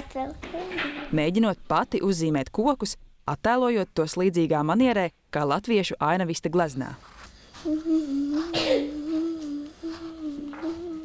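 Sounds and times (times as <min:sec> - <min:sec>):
child humming: 0:07.6 - 0:11.0.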